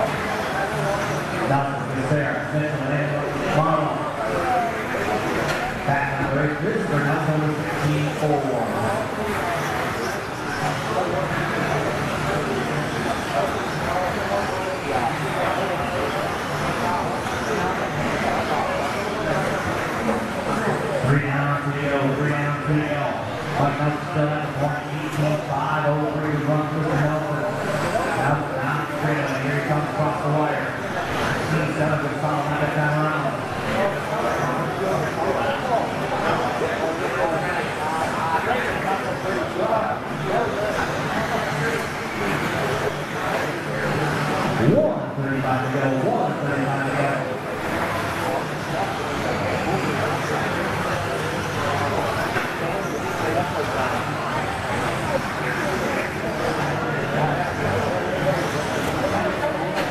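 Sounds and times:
hall background noise: 0.0 - 59.9
man commentating: 0.7 - 4.9, 5.8 - 9.2, 20.9 - 34.1, 42.7 - 47.4.

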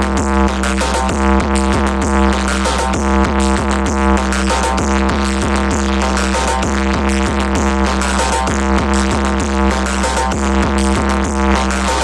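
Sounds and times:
deep bass: 0.0 - 12.0
loud electronic dance music: 0.0 - 12.0.

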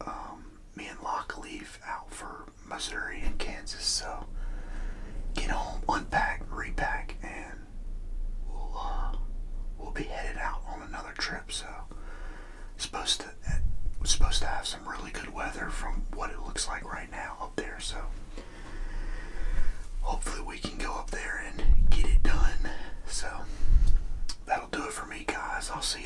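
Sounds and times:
man whispering: 0.0 - 4.4, 5.3 - 7.7, 8.4 - 12.0, 12.7 - 18.3, 19.4 - 23.6, 24.3 - 26.0
low rumble: 2.8 - 26.0.

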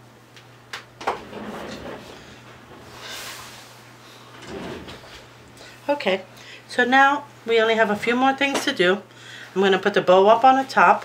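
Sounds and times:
sliding and rustling: 1.1 - 5.5.

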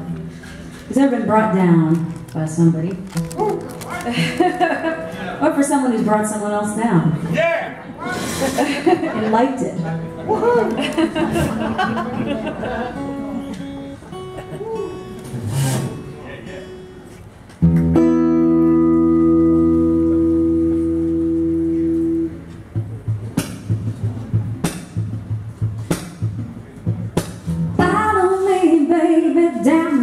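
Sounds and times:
acoustic guitar notes and chords: 0.0 - 7.3, 7.9 - 30.0
rhythmic guitar strumming: 0.0 - 7.3, 8.2 - 30.0
woman singing: 27.8 - 30.0.

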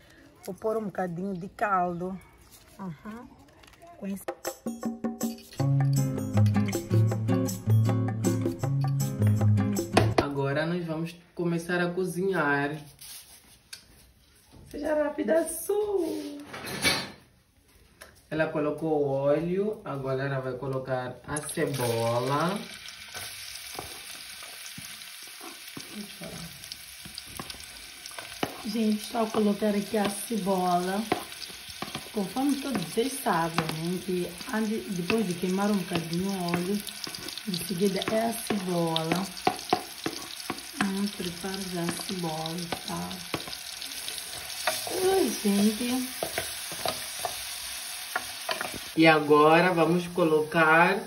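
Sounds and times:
onion sizzling in hot oil: 21.3 - 51.0
wooden spoon scraping a pot: 27.4 - 49.0.

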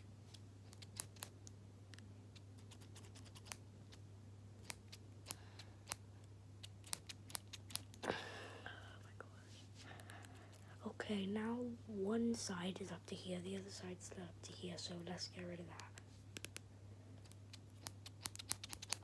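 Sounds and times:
steady low hum: 0.0 - 19.0
scissors snipping: 0.3 - 4.0, 4.6 - 6.0, 6.6 - 8.0, 17.2 - 19.0.

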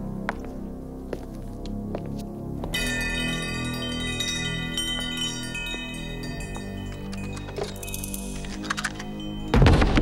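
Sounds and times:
metal wind chimes ringing: 2.8 - 9.6.

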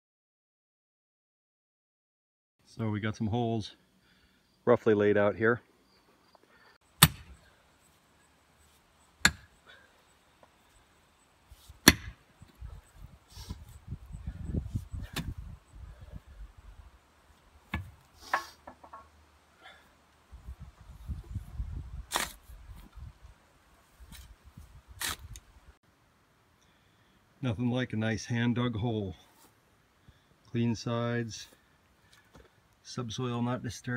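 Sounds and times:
shovel striking stony soil: 7.0 - 7.4, 9.2 - 9.6, 11.6 - 12.2, 15.0 - 15.4, 22.1 - 22.5, 25.0 - 25.4
shovel scraping dirt: 22.0 - 22.9, 23.8 - 25.4.

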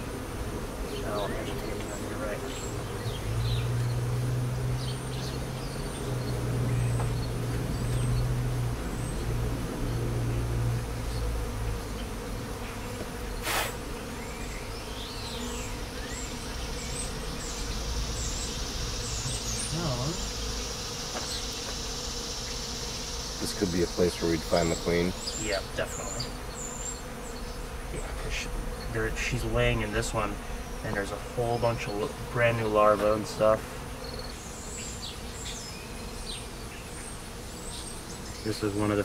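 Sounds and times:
honey bees buzzing: 0.0 - 39.0.

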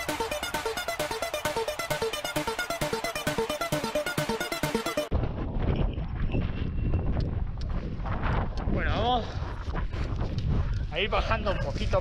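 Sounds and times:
wind buffeting microphone: 5.1 - 12.0.

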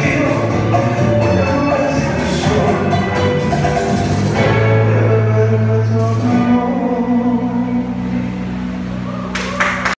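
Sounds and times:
bachata music playing loudly: 0.0 - 7.2.

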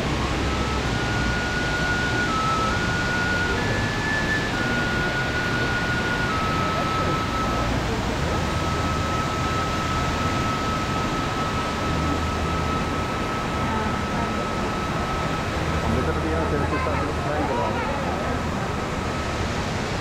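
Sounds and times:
thin high tone: 0.0 - 20.0
waterfall roaring: 0.0 - 20.0.

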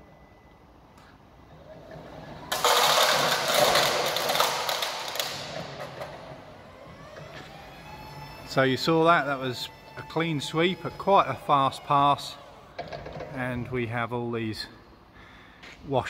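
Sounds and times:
forklift motor whine: 5.1 - 13.0.

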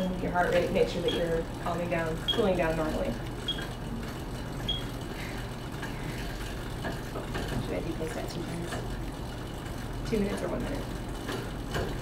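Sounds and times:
exercise bike flywheel whirring: 0.0 - 12.0.

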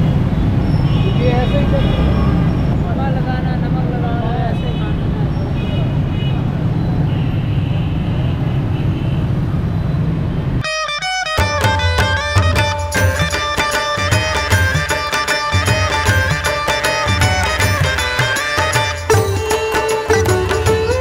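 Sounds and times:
passing traffic rumble: 0.0 - 21.0.

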